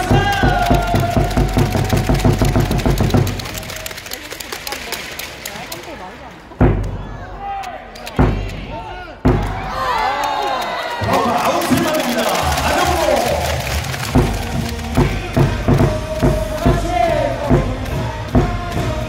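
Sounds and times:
crowd chatter in hall: 0.0s - 19.0s.

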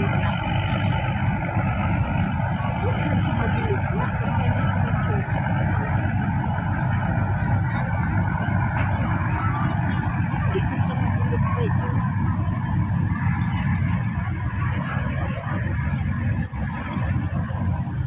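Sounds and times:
people talking indistinctly: 0.0s - 15.8s
motor boats running: 0.0s - 18.0s.

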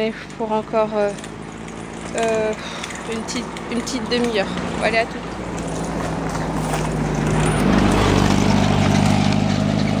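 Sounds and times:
truck engine running: 0.0s - 10.0s.

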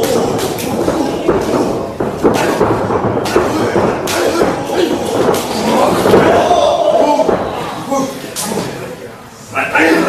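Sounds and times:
bodies thudding on ring canvas: 0.0s - 7.6s
spectators' voices in a hall: 0.0s - 10.0s.

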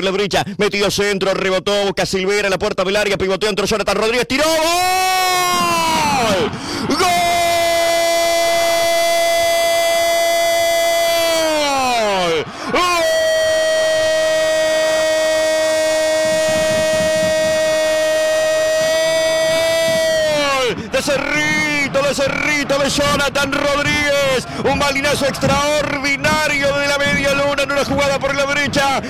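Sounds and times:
commentator shouting goal: 2.8s - 29.0s.

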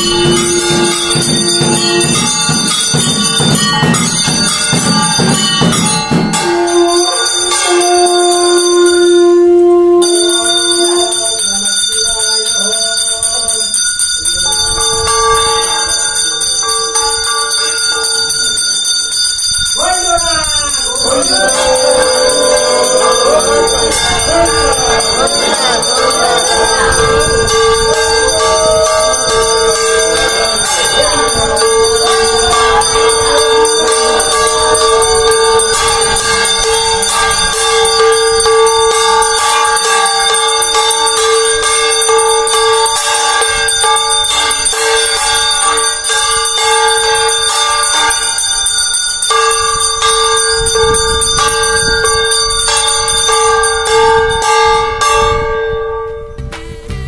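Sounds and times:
temple bell ringing: 0.0s - 57.0s.

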